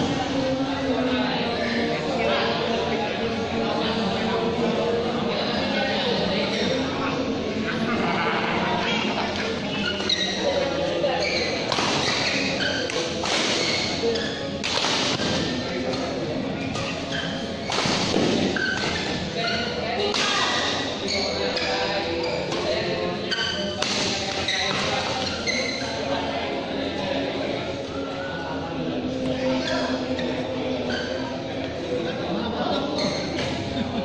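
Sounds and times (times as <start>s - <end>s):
shoes thudding and squeaking: 9.8s - 16.0s, 16.6s - 22.6s, 23.3s - 25.9s.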